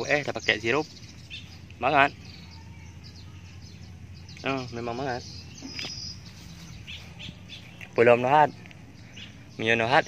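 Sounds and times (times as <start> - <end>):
faint bird calls: 0.0 - 10.0
quiet outdoor background noise: 0.0 - 10.0.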